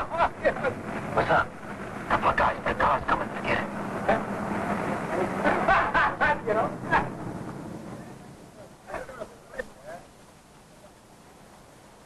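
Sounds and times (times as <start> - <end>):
indistinct men's voices: 0.0 - 9.8
low hum of street noise: 0.0 - 12.0.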